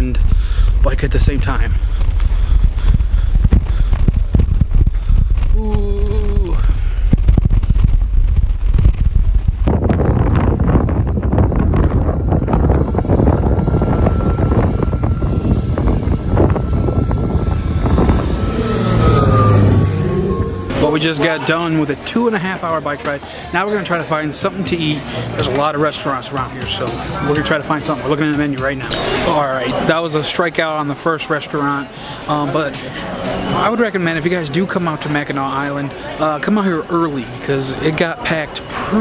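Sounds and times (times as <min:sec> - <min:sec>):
wind buffeting microphone: 0:00.0 - 0:21.1
small plane engine drone: 0:11.8 - 0:21.2.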